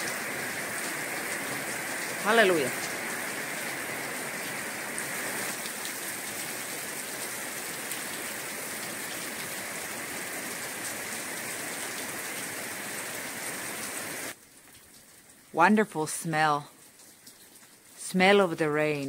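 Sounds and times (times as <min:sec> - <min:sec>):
steady rain falling: 0:00.0 - 0:19.0
raindrop ticks: 0:16.6 - 0:18.0.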